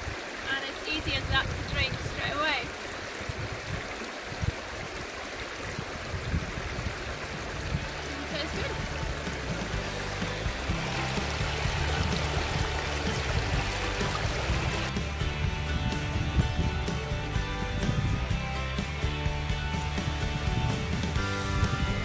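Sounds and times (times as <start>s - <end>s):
water running over stones: 0.0s - 22.0s
background music: 7.8s - 22.0s.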